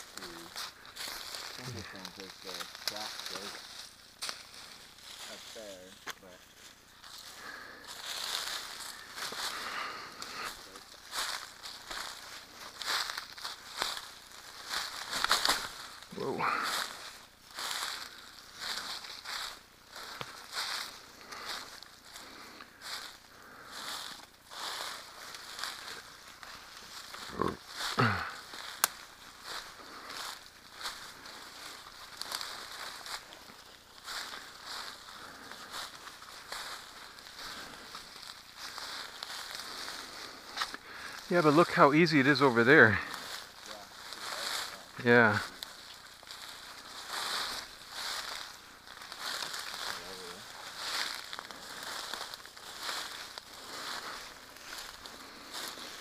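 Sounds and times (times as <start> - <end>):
footsteps crunching through dry leaves: 0.0 - 56.0
plants rustling: 0.0 - 56.0
person crying out: 27.4 - 28.3.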